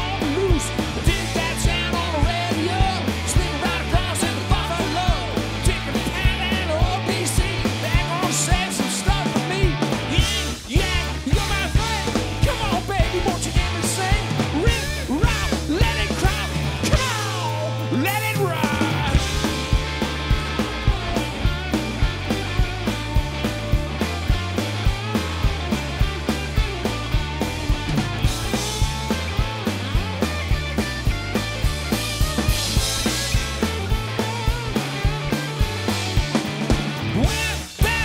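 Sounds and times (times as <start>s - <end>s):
bass line: 0.0s - 38.0s
drum kit beat: 0.0s - 38.0s
electric guitar: 0.0s - 38.0s.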